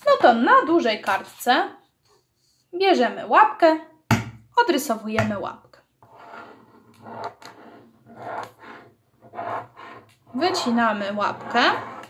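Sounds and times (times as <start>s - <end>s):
pen scratching on paper: 6.1s - 12.0s.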